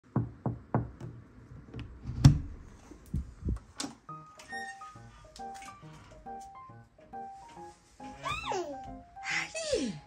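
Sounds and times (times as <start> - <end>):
knuckles knocking on wooden door: 0.1 - 1.2.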